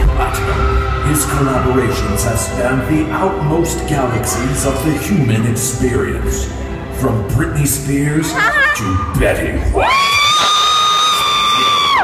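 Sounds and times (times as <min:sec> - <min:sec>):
high-pitched scream: 0:09.8 - 0:12.0.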